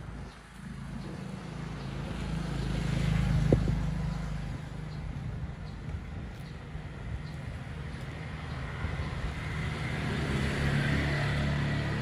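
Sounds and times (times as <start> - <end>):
vehicle engine passing by: 0.0 - 12.0.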